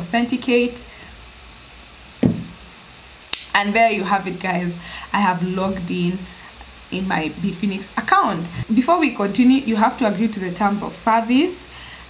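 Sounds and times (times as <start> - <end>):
dull knock: 2.2 - 2.6.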